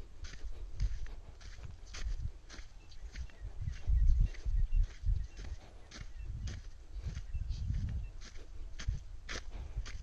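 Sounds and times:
footsteps on dusty ground: 0.0 - 10.0
wind rumbling on microphone: 0.0 - 10.0.

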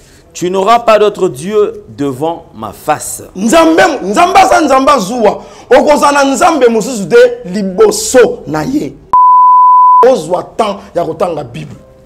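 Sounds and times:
electronic bleep tone: 9.2 - 10.1.

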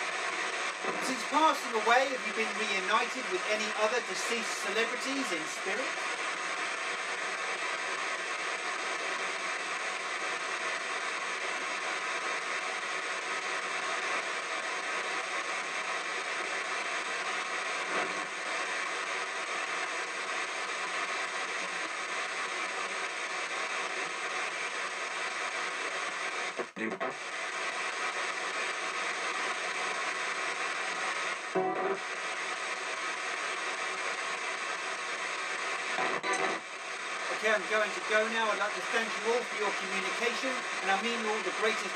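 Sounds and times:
radio static hiss: 0.0 - 41.9
snatch of broadcast sound: 0.4 - 6.3, 35.3 - 41.9.

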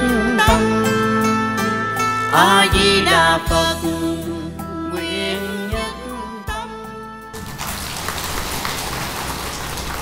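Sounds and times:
audience applauding: 7.4 - 10.0.

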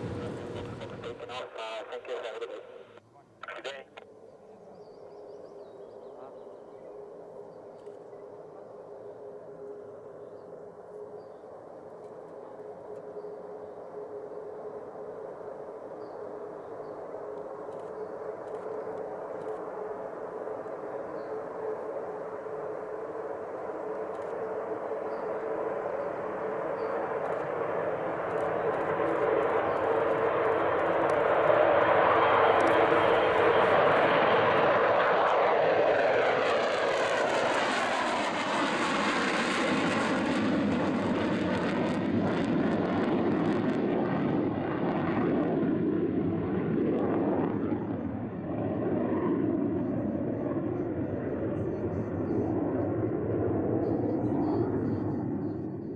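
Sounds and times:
jet airliner taking off: 0.0 - 3.0, 8.2 - 55.9.

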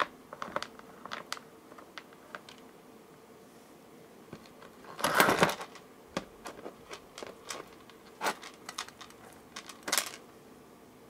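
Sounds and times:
small beads rattling: 4.4 - 10.2.

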